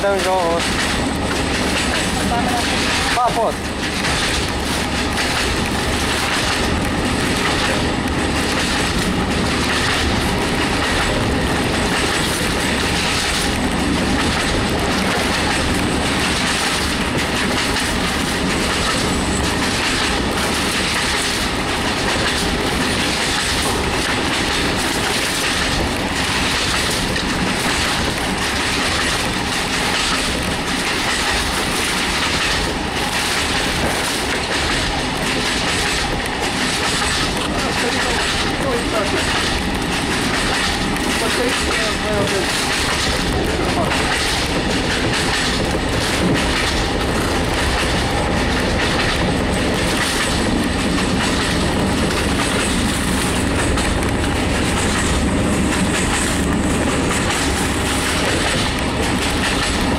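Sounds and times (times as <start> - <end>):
train rumble: 0.0 - 59.9
wheels clacking over rail joints: 0.0 - 59.9.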